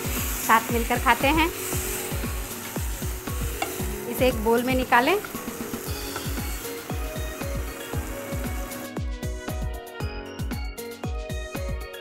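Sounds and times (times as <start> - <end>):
food sizzling in a frying pan: 0.0 - 9.7
electronic music with kick-drum beat: 5.2 - 12.0.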